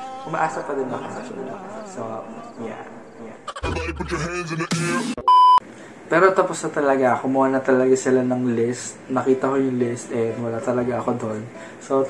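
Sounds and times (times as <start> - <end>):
electronic censor bleep: 5.2 - 5.6.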